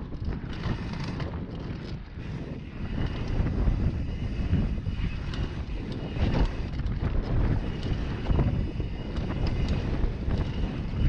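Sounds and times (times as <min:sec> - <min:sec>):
bike rattling clicks: 0:00.0 - 0:11.0
wind buffeting microphone: 0:00.0 - 0:11.0.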